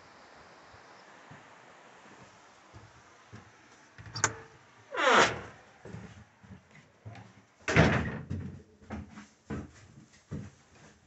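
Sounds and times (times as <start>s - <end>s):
wooden door banging: 7.7s - 8.5s.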